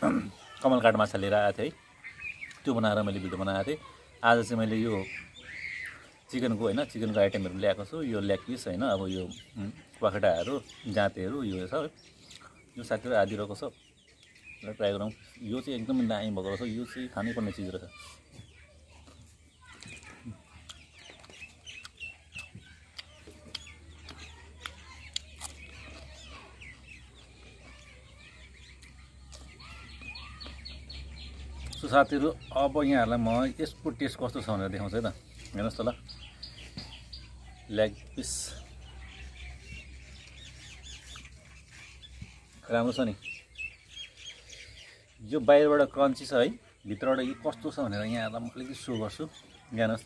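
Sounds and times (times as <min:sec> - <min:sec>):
chickens clucking: 0:00.0 - 0:50.0
faint birds chirping: 0:00.0 - 0:50.0.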